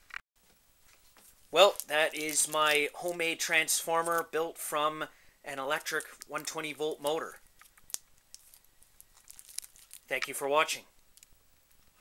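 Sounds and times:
plastic wrapping crinkling: 0.8 - 4.4, 5.7 - 12.0.

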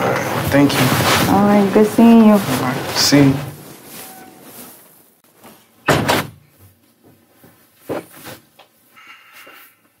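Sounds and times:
door shutting with latch knock: 5.9 - 6.4.

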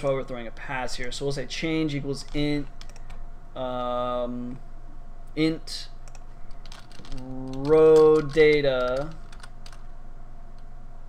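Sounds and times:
keyboard keystrokes: 6.0 - 9.8.

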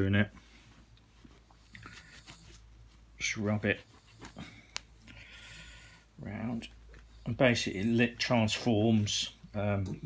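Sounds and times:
soft steady hiss: 0.0 - 10.0.

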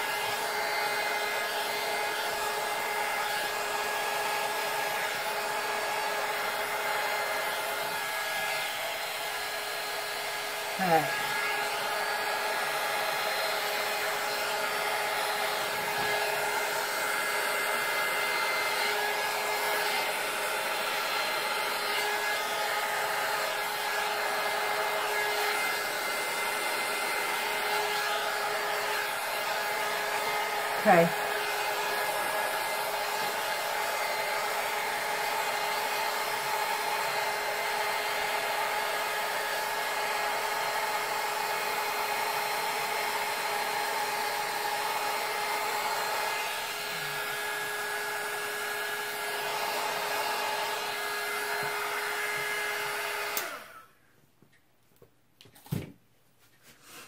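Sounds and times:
heat gun blowing: 0.0 - 54.0.

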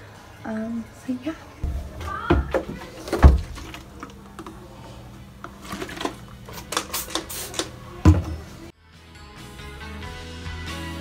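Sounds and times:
heavy thump: 1.6 - 3.6
spray bottle squirting: 5.7 - 7.8
background music: 8.7 - 11.0.

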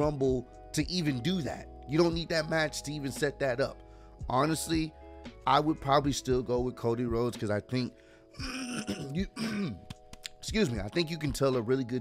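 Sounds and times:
man clearing his throat: 8.4 - 9.9.

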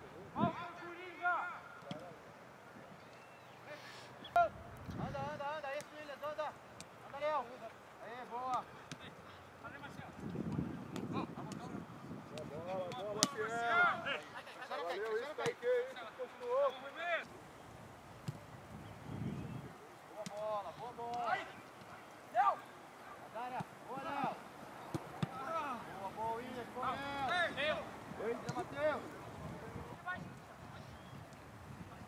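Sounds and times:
people shouting and calling out: 20.2 - 30.3.

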